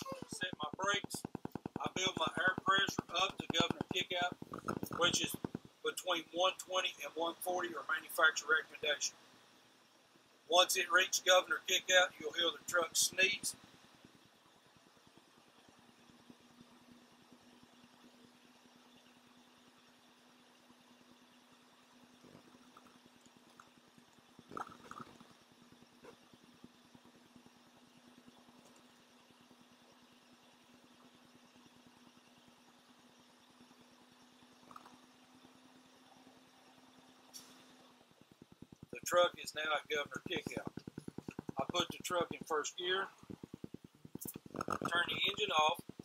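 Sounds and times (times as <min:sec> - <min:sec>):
idling truck hum: 0:00.0 - 0:46.0.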